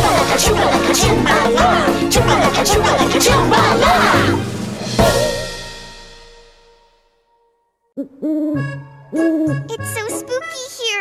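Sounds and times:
spooky background music: 0.0 - 5.8, 8.1 - 10.8
cartoon owl hooting: 8.0 - 10.2.

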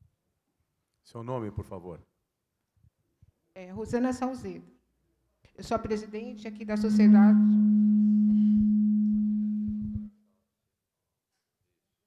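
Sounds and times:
sound system low hum: 5.7 - 10.1.

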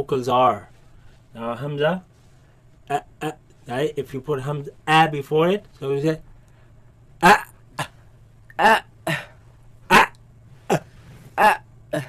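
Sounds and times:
man voicing short syllables: 8.5 - 9.2, 11.4 - 12.0.

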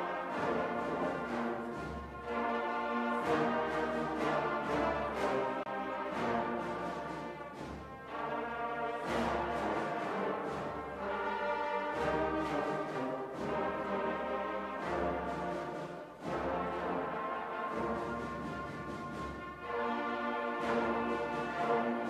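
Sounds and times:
brass band playing slow chords: 0.0 - 22.0.

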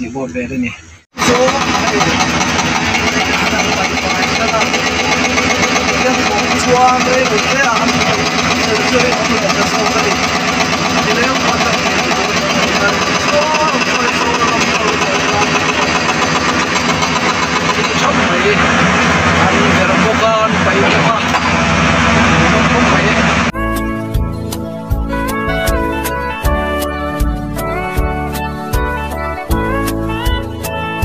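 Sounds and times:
excavator engines running: 1.1 - 23.5
crowd talking: 1.2 - 23.5
music: 23.5 - 31.0.

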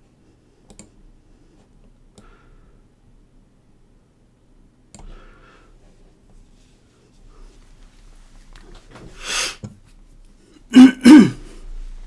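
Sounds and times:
man clearing his throat: 10.7 - 11.5.

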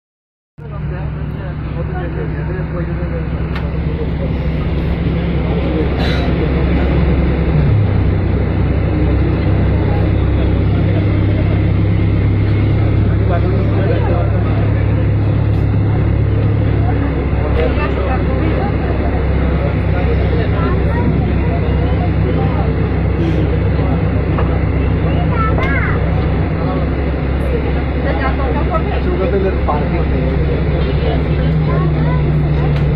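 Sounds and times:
faint voices talking: 0.6 - 32.9
vehicle engine running: 0.6 - 32.9.

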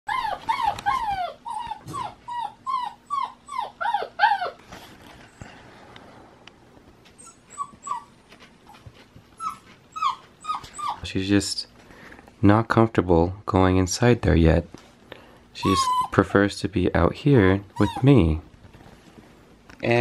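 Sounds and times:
puppy whining: 0.1 - 5.5, 7.1 - 11.1, 15.6 - 16.4, 17.5 - 18.5.

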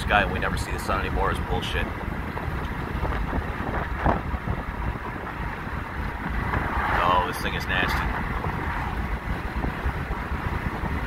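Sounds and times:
road and engine noise: 0.0 - 11.0
wind rumbling on microphone: 0.0 - 11.0.

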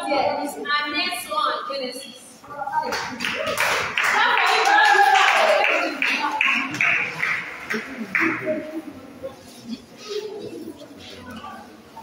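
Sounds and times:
voices: 0.0 - 12.0
people clapping: 2.8 - 9.0.

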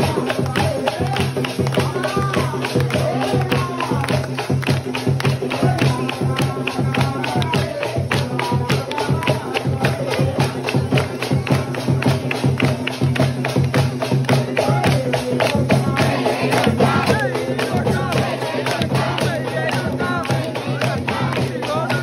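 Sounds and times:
fast percussion music: 0.0 - 22.0
voices: 0.0 - 22.0.

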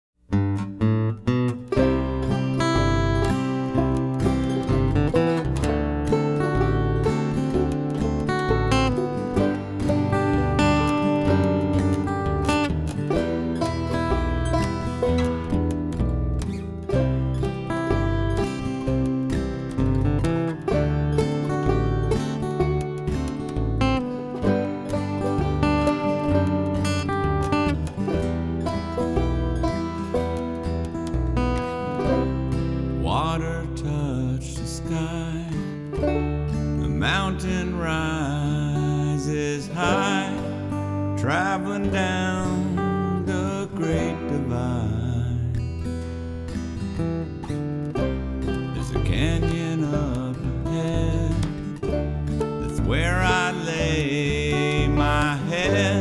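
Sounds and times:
acoustic guitar: 0.2 - 56.0
acoustic bass: 0.3 - 56.0
banjo: 0.3 - 56.0.

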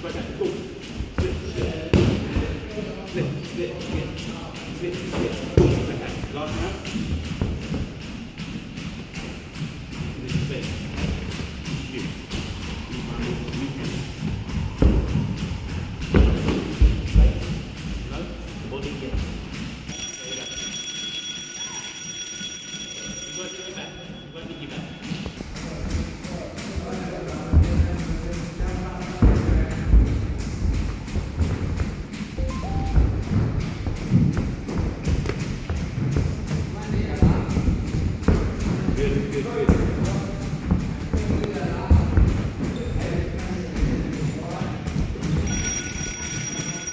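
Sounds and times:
electronic round timer tone: 19.9 - 25.3, 32.4 - 33.8, 45.5 - 46.9.

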